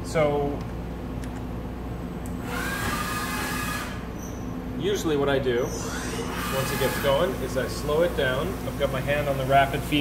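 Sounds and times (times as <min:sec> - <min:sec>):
steady shop hum: 0:00.0 - 0:10.0.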